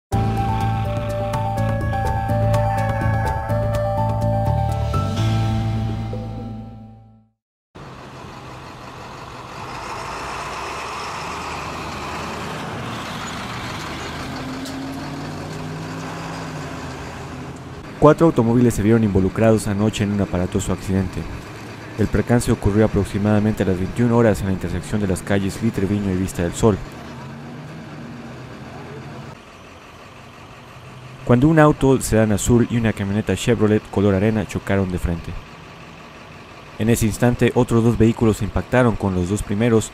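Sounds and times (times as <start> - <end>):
road traffic noise: 0.1 - 7.0, 7.8 - 39.9
truck engine running: 0.1 - 7.0, 7.8 - 39.9.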